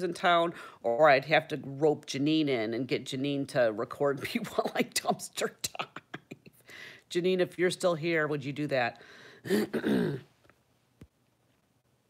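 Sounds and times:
woman clearing her throat: 0:09.5 - 0:10.3.

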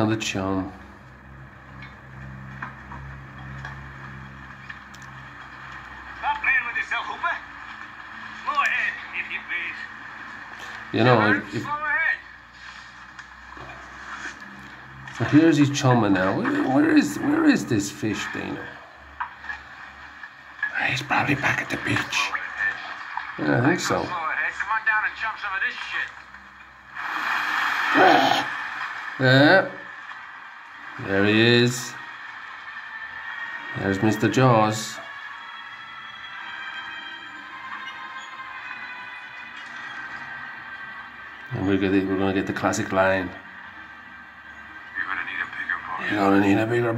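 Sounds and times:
film soundtrack through laptop speakers: 0:00.0 - 0:46.9
boat engine drone: 0:00.8 - 0:25.2, 0:26.1 - 0:36.5
sea hiss: 0:26.9 - 0:28.4.

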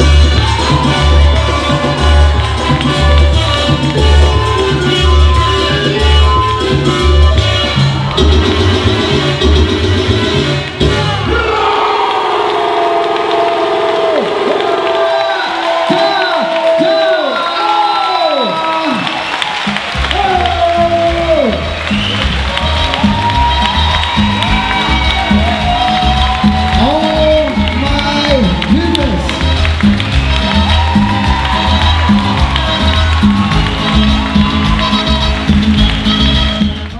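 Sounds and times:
audience cheering and whooping: 0:00.0 - 0:06.9, 0:07.8 - 0:09.1, 0:11.0 - 0:36.9
salsa music: 0:00.0 - 0:36.9.

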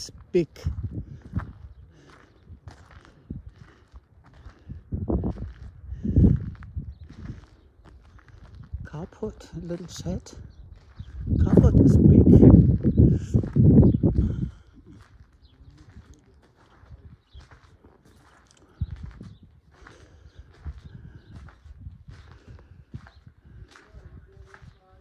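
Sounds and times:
footsteps on gravel: 0:00.0 - 0:25.0.

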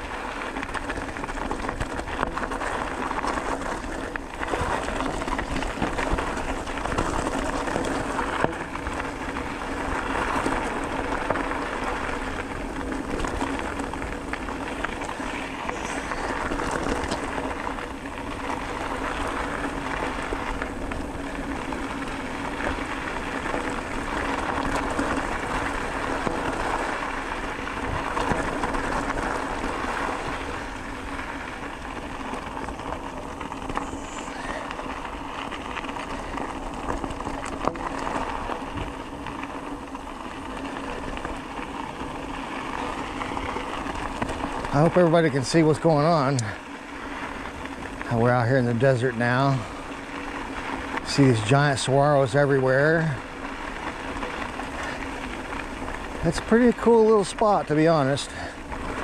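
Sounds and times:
bicycle tyres crunching on gravel: 0:00.0 - 0:59.0
steady rushing noise: 0:00.0 - 0:59.0.

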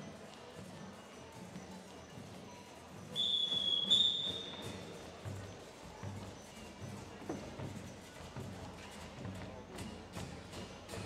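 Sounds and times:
low murmur of voices: 0:00.0 - 0:11.0
shrill whistle blast: 0:03.2 - 0:04.6.

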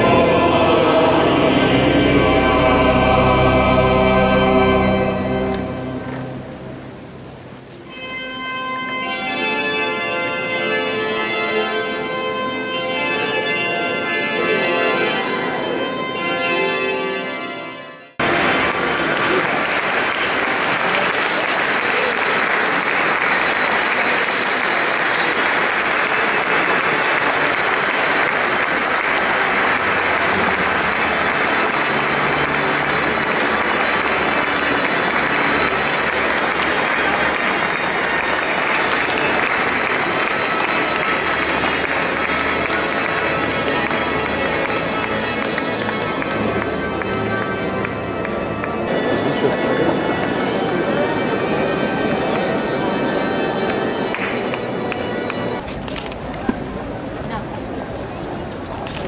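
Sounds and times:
pipe organ music: 0:00.0 - 0:57.1
congregation applauding: 0:18.2 - 0:56.1.

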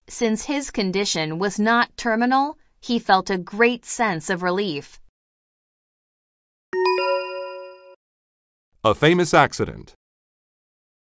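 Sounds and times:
two-note bell chime: 0:06.8 - 0:08.0.

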